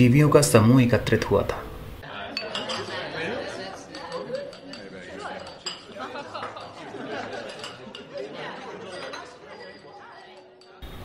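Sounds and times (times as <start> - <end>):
glasses and cutlery clinking: 1.5 - 11.0
crowd chattering: 2.0 - 11.0.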